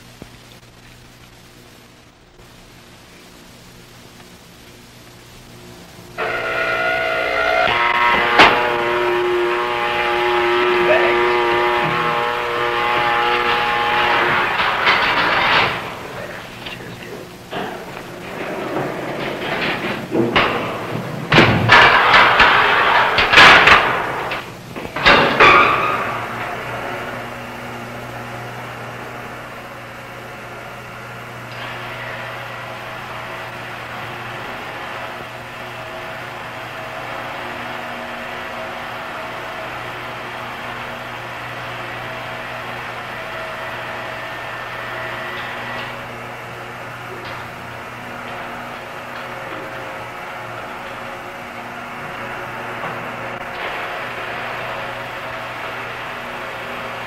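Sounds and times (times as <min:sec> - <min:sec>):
elevator humming: 0:01.1 - 0:57.0
metal clanks and bangs: 0:10.4 - 0:16.1, 0:17.5 - 0:27.0.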